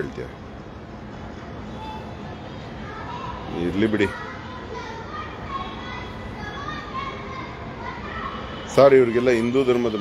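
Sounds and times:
distant voices: 0:00.0 - 0:10.0
outdoor urban noise: 0:00.0 - 0:10.0.

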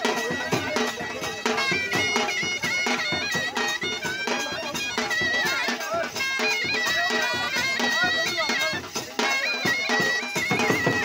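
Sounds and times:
barrel drums beating: 0:00.0 - 0:11.0
reed pipe melody: 0:00.0 - 0:11.0.

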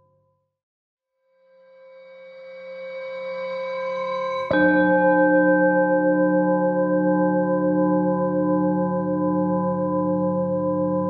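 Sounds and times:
singing bowl tone: 0:01.4 - 0:11.0.

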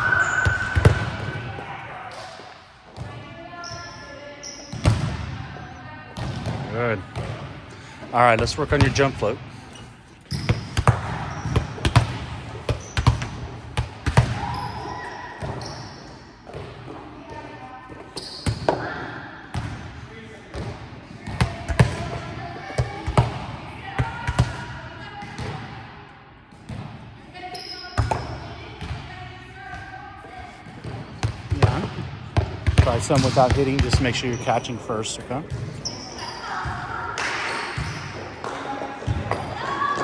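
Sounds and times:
volleyball thudding on gym floor: 0:00.4 - 0:01.5, 0:10.3 - 0:14.6.

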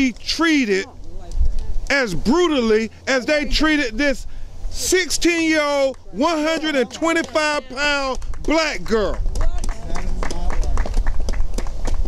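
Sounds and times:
wind rumble on microphones: 0:00.9 - 0:04.8, 0:07.1 - 0:12.0.

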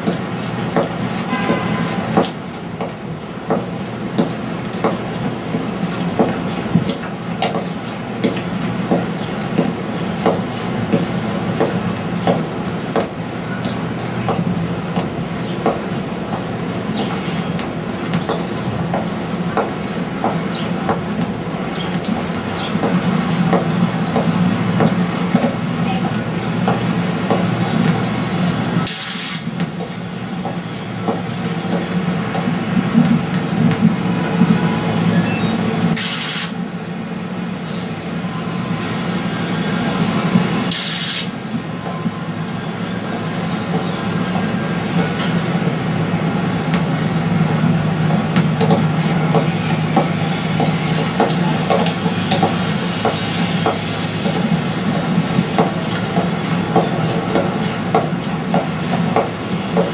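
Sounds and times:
bursts of hiss: 0:28.8 - 0:29.6, 0:36.0 - 0:36.6.

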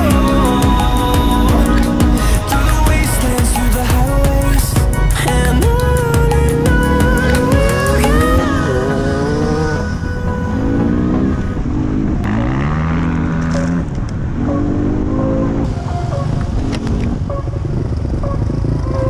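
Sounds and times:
background music: 0:00.0 - 0:19.0
motorcycle engines revving: 0:00.0 - 0:19.0.

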